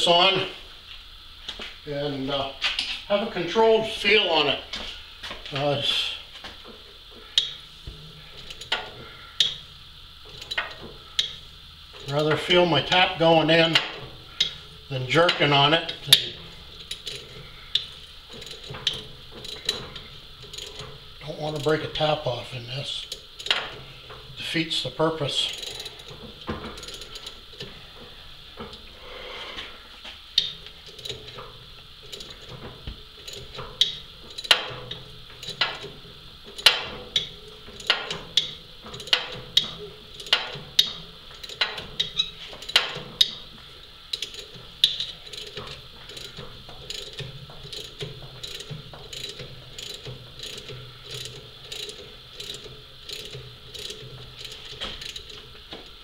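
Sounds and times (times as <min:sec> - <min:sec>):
hand ratchet clicking: 0:07.4 - 0:07.6, 0:08.4 - 0:09.6, 0:10.3 - 0:11.4, 0:12.0 - 0:22.2, 0:23.0 - 0:24.4, 0:25.2 - 0:27.8, 0:30.4 - 0:43.5, 0:44.1 - 0:56.0.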